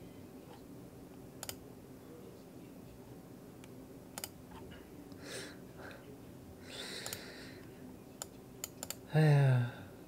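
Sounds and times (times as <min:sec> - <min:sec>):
sharp clicks: 0:01.4 - 0:01.6, 0:04.2 - 0:04.4, 0:08.2 - 0:09.0
man humming: 0:09.1 - 0:10.0.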